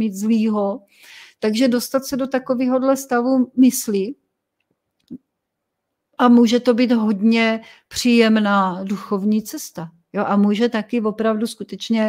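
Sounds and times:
woman speaking: 0.0s - 4.2s, 6.2s - 12.0s.

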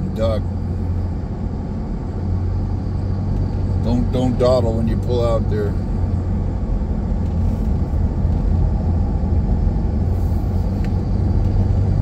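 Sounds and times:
car cabin road noise: 0.0s - 12.0s.

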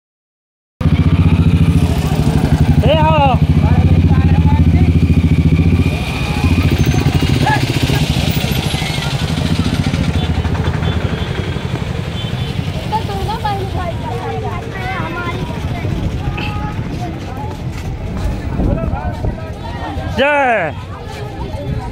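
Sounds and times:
vehicle engine running: 0.8s - 19.6s
street rumble: 0.8s - 21.9s
children's voices: 12.7s - 20.2s.

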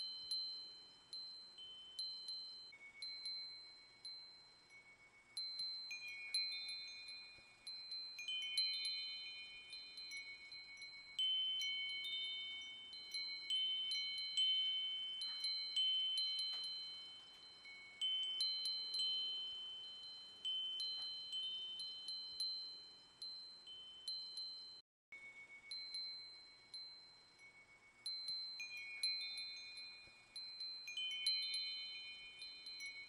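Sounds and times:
wind chimes ringing: 0.0s - 33.0s.

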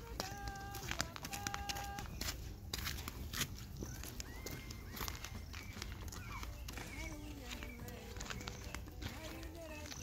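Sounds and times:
footsteps on a dirt path: 0.0s - 10.0s
bird chirps: 3.6s - 10.0s.

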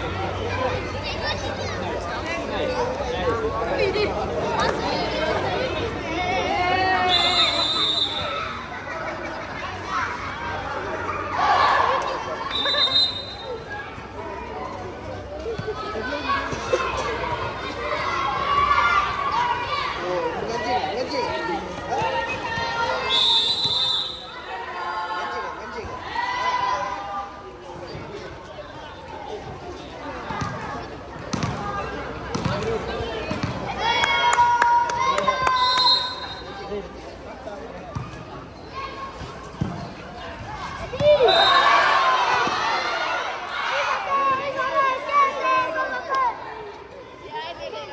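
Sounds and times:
children chattering: 0.0s - 47.9s.

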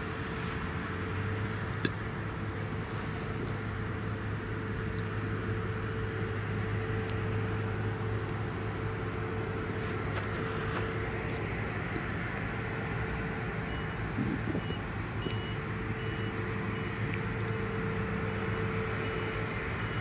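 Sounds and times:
forage harvester engine drone: 0.0s - 20.0s.

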